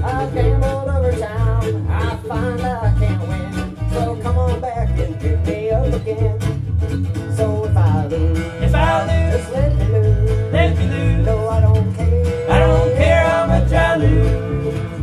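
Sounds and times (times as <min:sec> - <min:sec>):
acoustic guitar: 0:00.0 - 0:15.0
electric bass line: 0:00.0 - 0:15.0
fiddle: 0:00.0 - 0:15.0
mandolin: 0:00.0 - 0:15.0.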